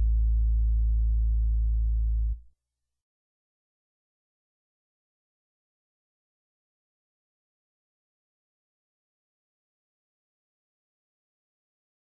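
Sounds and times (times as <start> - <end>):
held low bass note: 0.0 - 2.4.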